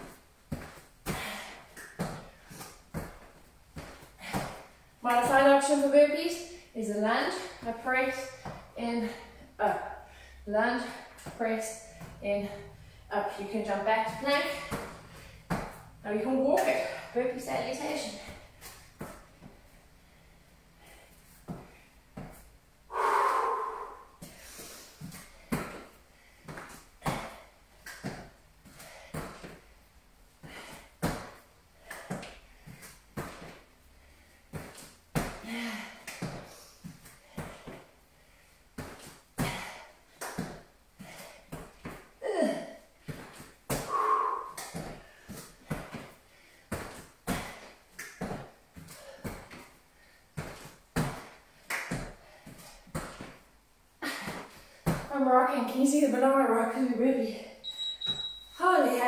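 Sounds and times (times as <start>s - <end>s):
thuds on rubber gym floor: 13.9s - 15.9s, 50.4s - 53.4s
short vocal sounds: 22.9s - 24.1s.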